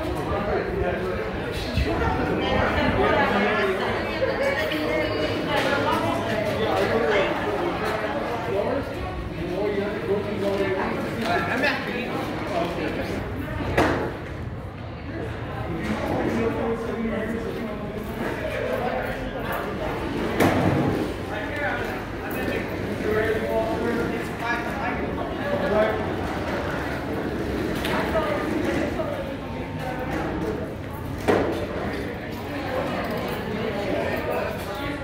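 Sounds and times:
indistinct chatter of people: 0.0s - 35.0s.

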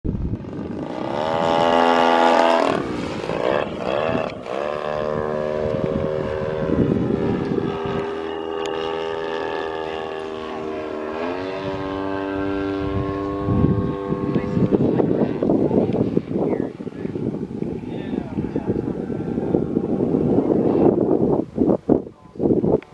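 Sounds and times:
model airplane motor and propeller: 0.1s - 22.9s.

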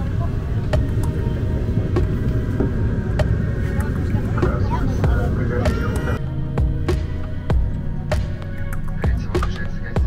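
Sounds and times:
airliner cabin rumble: 0.0s - 10.0s.

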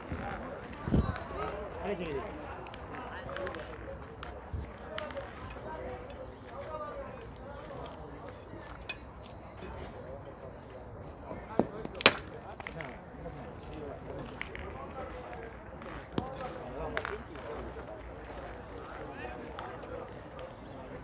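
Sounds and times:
murmur of people talking: 0.0s - 21.0s.

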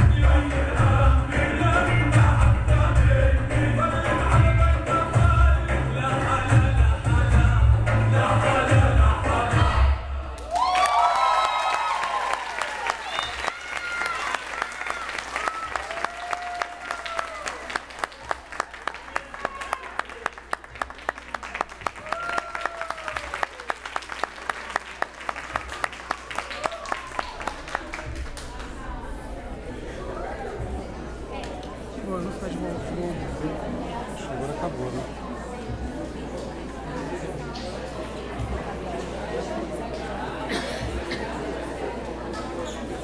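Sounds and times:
audience cheering and whooping: 10.4s - 20.3s, 21.8s - 24.3s, 25.4s - 29.2s
audience applauding: 10.4s - 29.2s.

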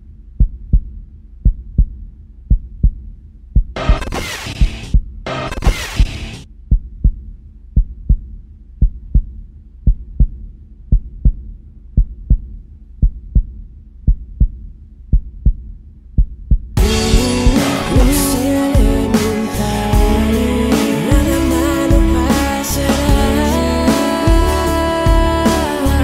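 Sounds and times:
heartbeat double thumps: 0.3s - 19.4s, 20.0s - 23.6s, 24.3s - 25.5s
band music: 16.8s - 26.0s
faint low drone: 16.8s - 26.0s.

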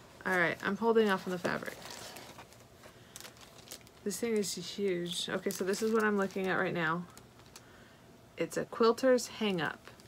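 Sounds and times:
packaging rustling and crinkling: 0.0s - 7.7s.

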